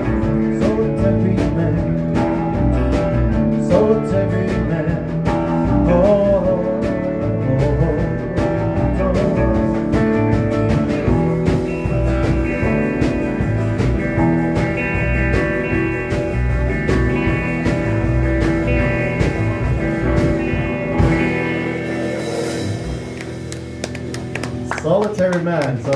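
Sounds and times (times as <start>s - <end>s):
rock band playing instrumental: 0.0s - 25.9s.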